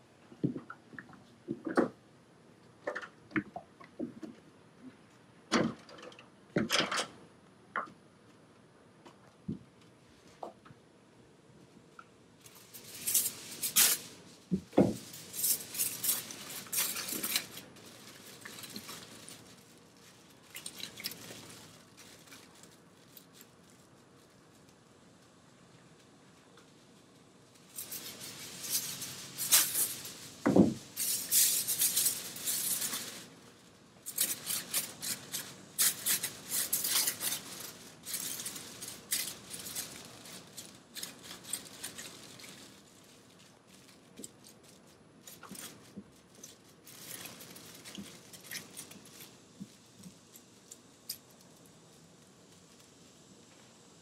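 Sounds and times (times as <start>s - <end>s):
aluminium foil crinkling: 12.4s - 53.6s.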